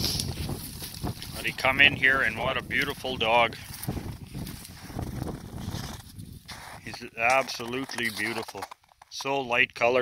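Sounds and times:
wind rumble on microphone: 0:00.0 - 0:07.1
footsteps in snow: 0:00.0 - 0:09.4.

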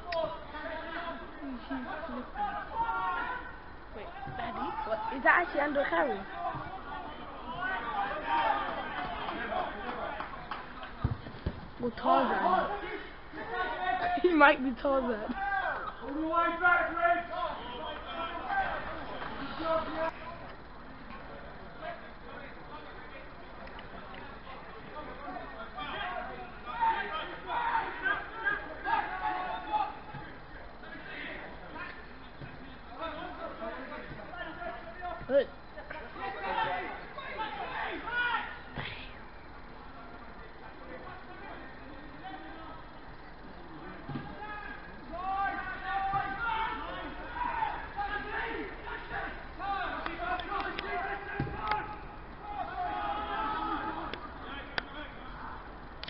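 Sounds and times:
voices shouting: 0:00.0 - 0:23.3, 0:24.0 - 0:56.0
steady outdoor hiss: 0:00.0 - 0:56.0.

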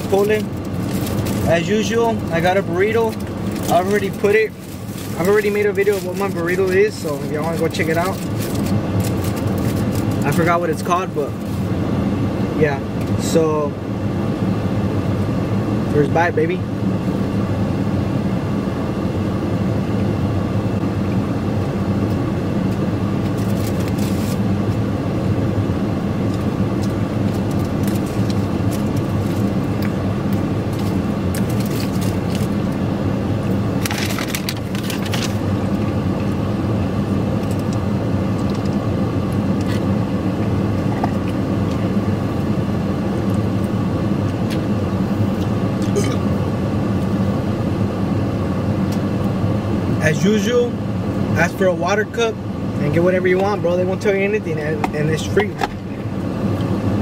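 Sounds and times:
crinkling rustles: 0:00.0 - 0:01.6, 0:02.2 - 0:10.5, 0:23.3 - 0:24.4, 0:26.3 - 0:30.0, 0:30.7 - 0:32.6, 0:33.8 - 0:35.4
air conditioning fan: 0:00.0 - 0:57.0
engine running: 0:00.0 - 0:57.0.

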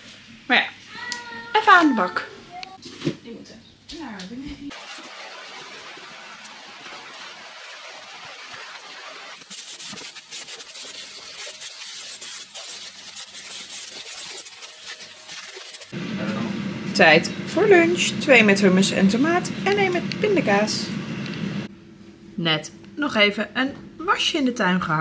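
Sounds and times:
vacuum cleaner running: 0:04.7 - 0:11.6, 0:14.5 - 0:21.7.

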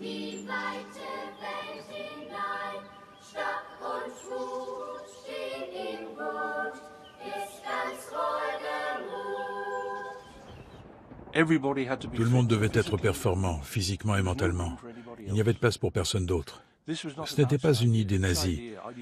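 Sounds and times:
girls singing a marching song: 0:00.0 - 0:10.3.

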